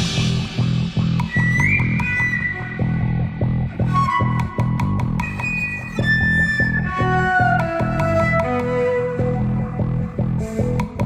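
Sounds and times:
instrumental rock music: 0:00.0 - 0:11.0.

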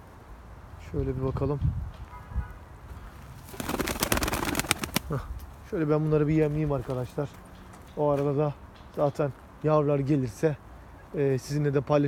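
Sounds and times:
wings flapping: 0:03.4 - 0:05.3
pigeons clicking and scrambling: 0:03.4 - 0:05.4.

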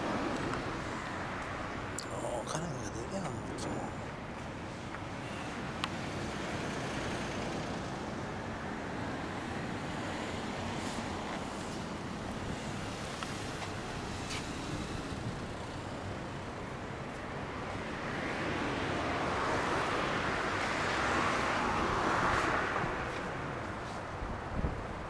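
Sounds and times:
vehicle passing on road: 0:00.0 - 0:25.0.

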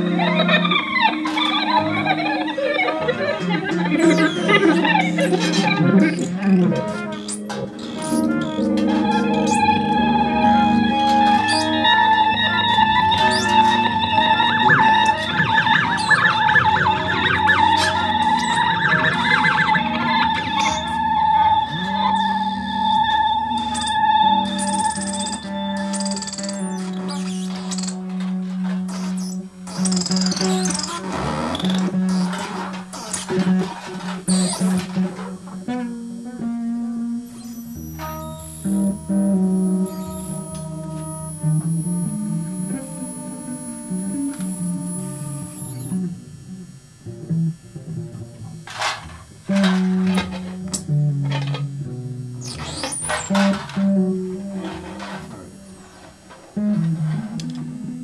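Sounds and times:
bass guitar line: 0:00.0 - 0:58.0
electric guitars with effects: 0:00.0 - 0:58.0.

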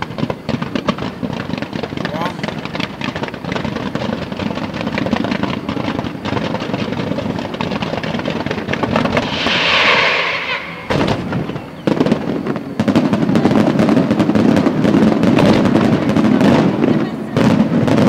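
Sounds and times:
fireworks bangs and crackles: 0:00.0 - 0:18.0
fireworks hissing rush: 0:00.0 - 0:18.0.

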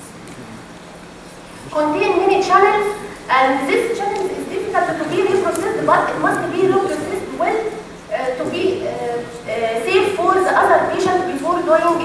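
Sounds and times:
woman lecturing: 0:01.7 - 0:12.0.

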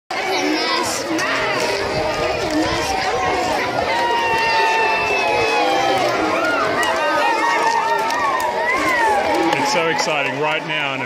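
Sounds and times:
children chattering: 0:00.1 - 0:11.0.

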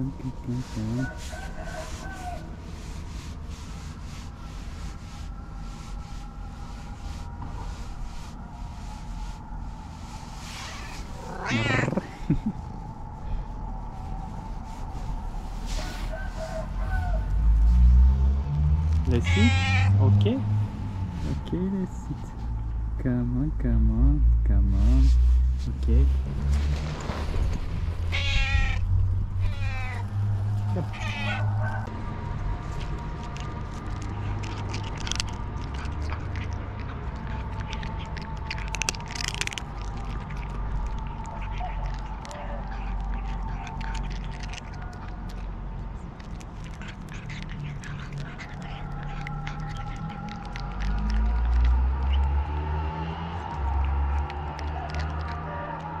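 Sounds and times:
low rumble: 0:00.0 - 0:56.0
cat meowing loudly: 0:10.6 - 0:12.0, 0:19.2 - 0:19.9, 0:28.1 - 0:31.7
cat crunching dry kibble: 0:10.6 - 0:12.5, 0:27.0 - 0:31.4, 0:32.6 - 0:52.2, 0:53.5 - 0:55.9.

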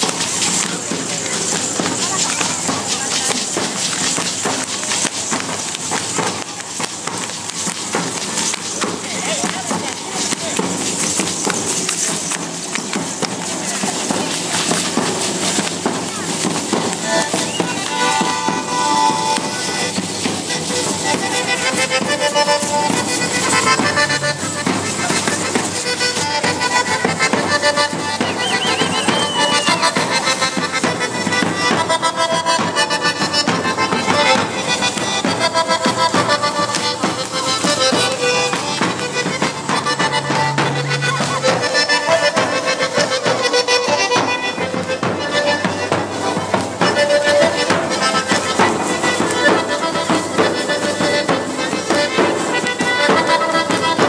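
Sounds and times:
crowd talking: 0:00.0 - 0:54.0
drums beating: 0:00.0 - 0:54.0
sustained melody line: 0:16.9 - 0:28.9, 0:31.9 - 0:53.8.

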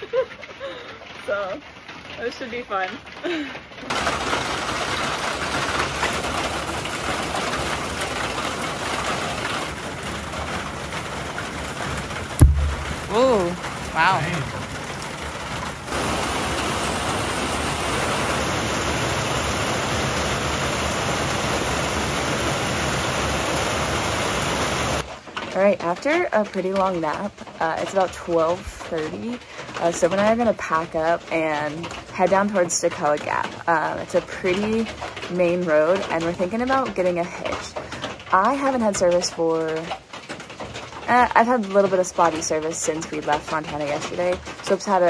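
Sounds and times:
heavy rain falling: 0:00.0 - 0:45.0
sharp knock: 0:12.4 - 0:13.1.

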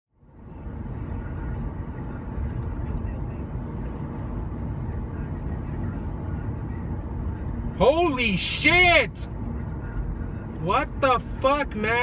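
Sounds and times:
car interior road rumble: 0:00.1 - 0:12.0.

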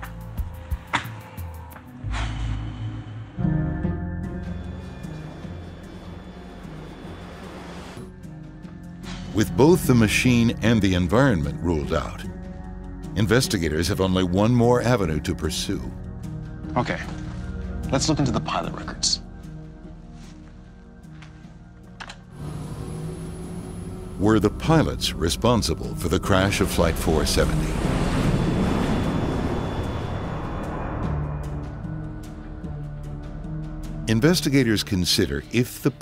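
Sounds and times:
low steady drone: 0:00.0 - 0:13.2, 0:22.3 - 0:34.1
whooshing rush: 0:27.5 - 0:32.2.

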